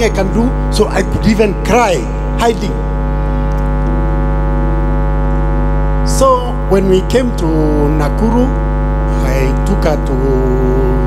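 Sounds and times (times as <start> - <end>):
electronic keyboard chord: 0.0 - 11.0
low electrical hum: 0.0 - 11.0.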